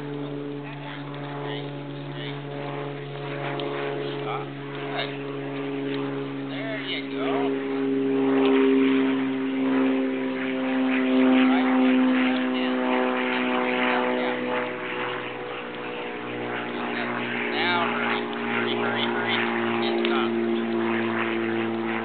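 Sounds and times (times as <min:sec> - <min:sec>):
faint voices: 0:00.0 - 0:22.0
steady engine drone: 0:00.0 - 0:22.0.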